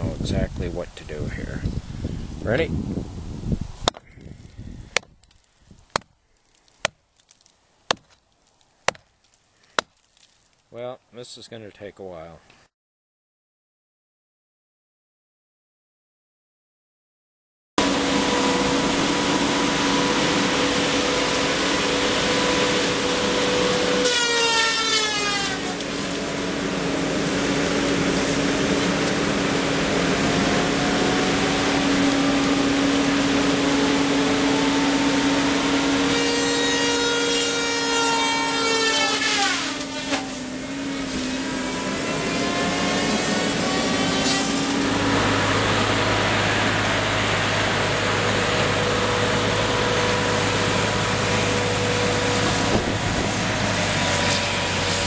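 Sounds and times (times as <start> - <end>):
diesel engine running: 17.8 - 55.0
disc saw whining: 17.8 - 55.0.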